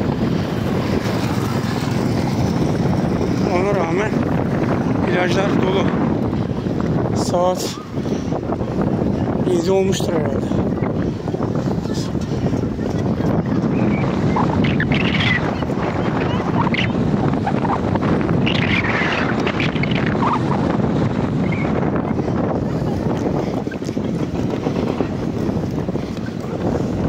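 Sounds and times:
wind buffeting microphone: 0:00.0 - 0:27.0
faint voices: 0:09.0 - 0:16.8, 0:21.7 - 0:27.0.

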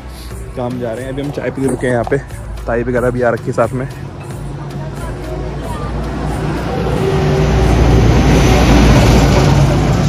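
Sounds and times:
truck passing: 0:00.0 - 0:10.0.

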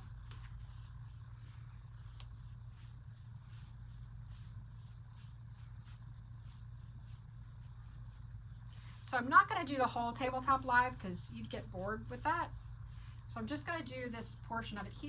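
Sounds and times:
brush bristle swishes: 0:00.0 - 0:13.4
steady low hum: 0:00.0 - 0:15.0.

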